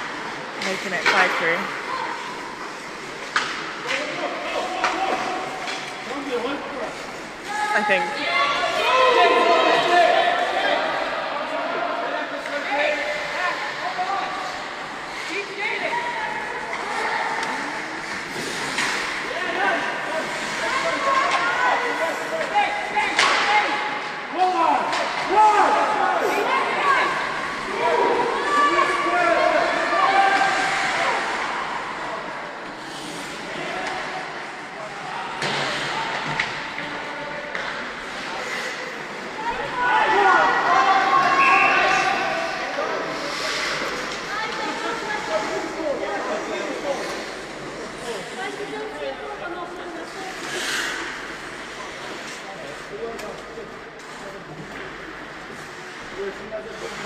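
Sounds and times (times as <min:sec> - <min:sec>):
voices calling and chattering: 0:00.0 - 0:57.0.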